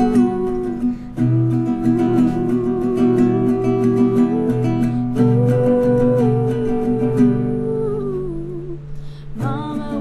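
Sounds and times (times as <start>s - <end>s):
acoustic guitar chord strummed: 0.0s - 10.0s.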